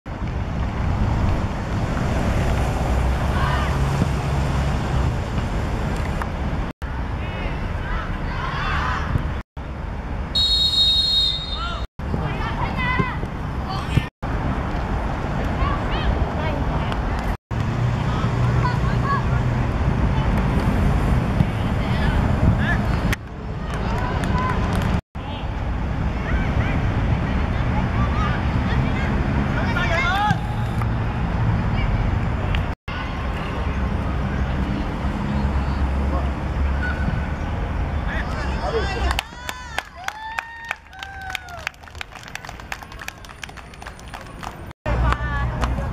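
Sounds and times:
wind rumbling on microphone: 0.1s - 7.4s, 19.4s - 25.0s
child shouting: 7.8s - 9.1s.

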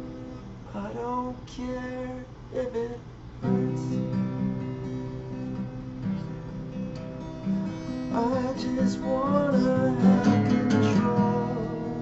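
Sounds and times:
acoustic guitar: 0.0s - 12.0s
man singing: 0.7s - 4.1s, 8.1s - 12.0s.

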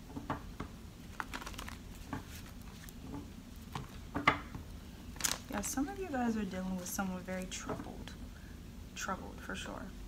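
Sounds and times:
cards clicking and tapping: 0.2s - 4.6s.

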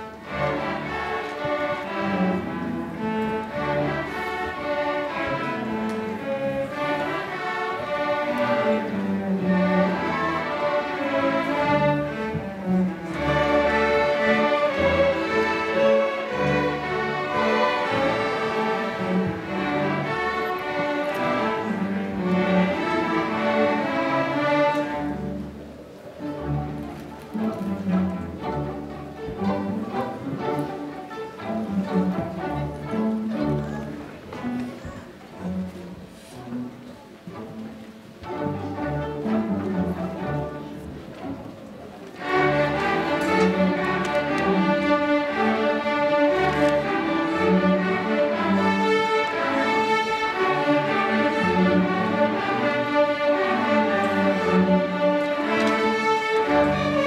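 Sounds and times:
string orchestra playing: 0.0s - 57.0s.

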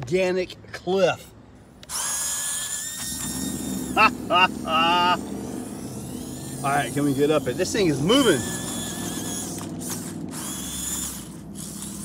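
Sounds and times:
small electric motor whining: 1.8s - 12.0s
low rumble of tyres: 2.8s - 12.0s.

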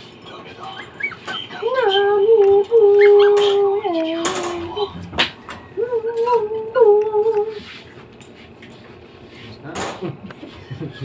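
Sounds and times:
dog whining: 0.5s - 6.8s.

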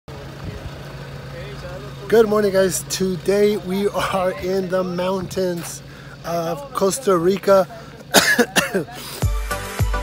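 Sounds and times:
faint voices: 0.1s - 9.2s
car engine idling: 0.1s - 10.0s.

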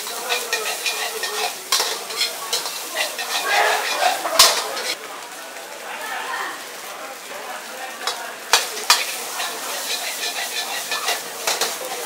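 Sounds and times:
ladle clanking on wok: 0.0s - 5.0s, 8.0s - 12.0s
metal ladle scraping a wok: 0.0s - 5.0s, 8.6s - 12.0s
frying sizzle: 0.0s - 12.0s.

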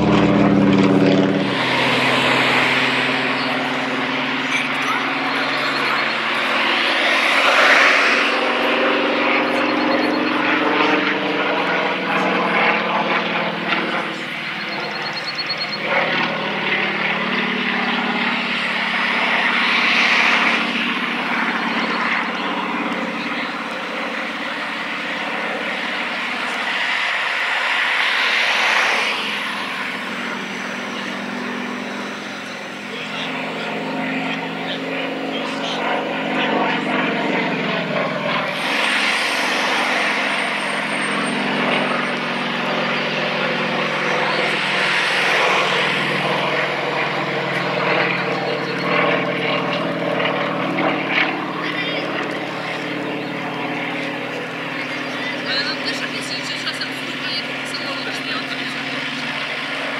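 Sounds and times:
propeller plane engine: 0.0s - 59.9s.

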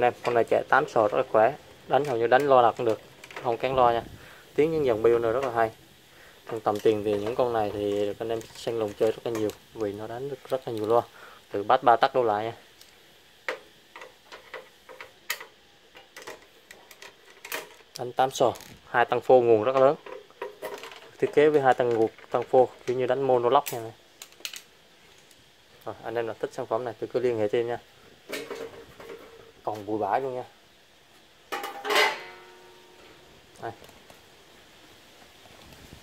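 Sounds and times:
sheet metal clang ringing: 31.6s - 33.0s.

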